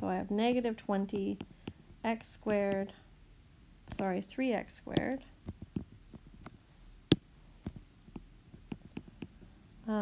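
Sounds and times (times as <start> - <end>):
stylus tapping on glass screen: 4.9 - 9.5.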